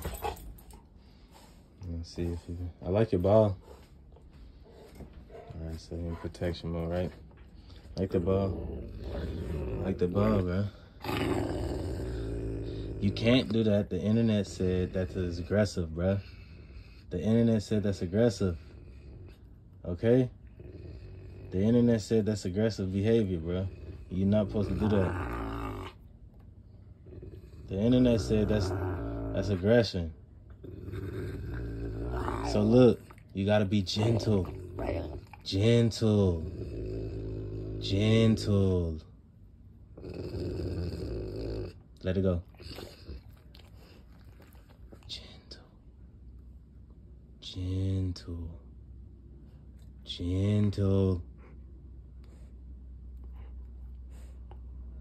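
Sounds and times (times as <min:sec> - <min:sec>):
dog growling low: 0:05.3 - 0:26.1, 0:26.8 - 0:39.1, 0:39.9 - 0:45.1.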